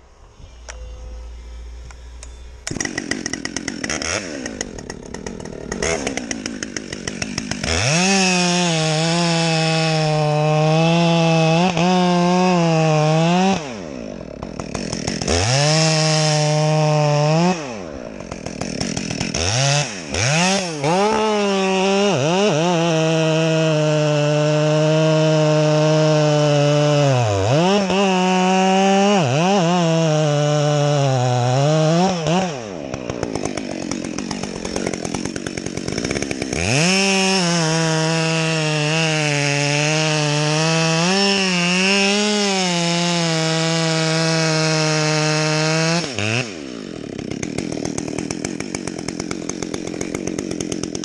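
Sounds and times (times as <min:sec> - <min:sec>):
chainsaw cutting wood: 0:00.0 - 0:51.0.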